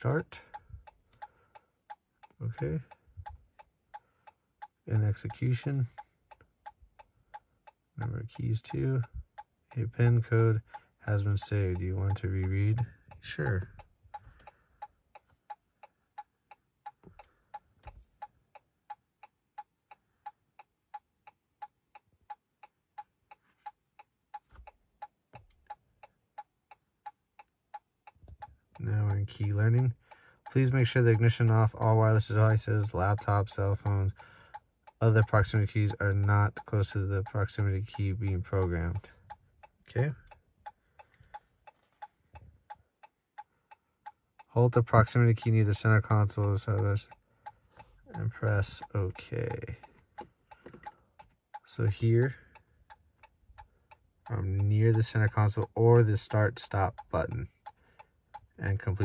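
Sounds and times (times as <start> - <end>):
hazard light flasher ticking: 0.0 - 59.0.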